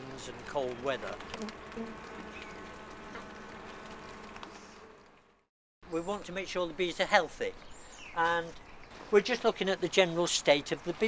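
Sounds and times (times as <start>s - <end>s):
honeybees humming: 0.0s - 10.0s.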